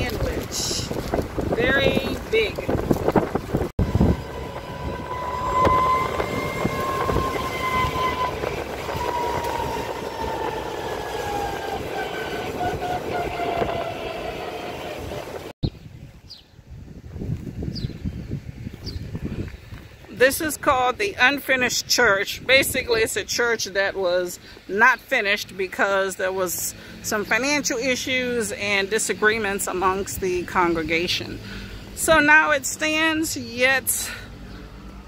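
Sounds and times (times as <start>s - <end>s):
road and wind noise: 0.0s - 35.0s
electric motor whine: 3.8s - 14.6s.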